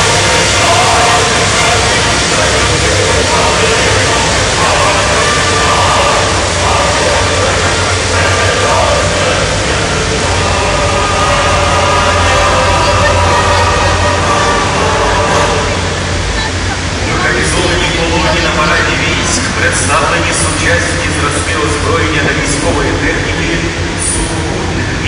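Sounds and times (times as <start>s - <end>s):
crowd murmuring: 0.0s - 25.0s
military vehicle engines passing: 0.0s - 25.0s.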